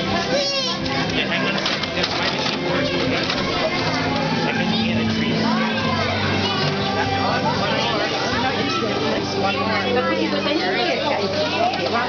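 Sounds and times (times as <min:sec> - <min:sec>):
crowd of children and adults chattering: 0:00.0 - 0:12.0.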